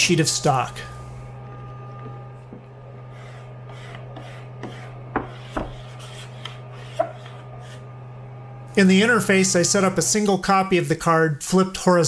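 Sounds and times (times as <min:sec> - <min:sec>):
steady low hum: 0:00.0 - 0:11.1
paper rubbing and scraping: 0:03.0 - 0:07.9.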